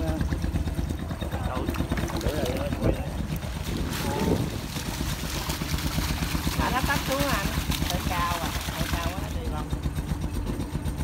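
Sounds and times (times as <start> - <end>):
water splashing: 0.0 - 10.1
boat engine running: 0.0 - 11.0.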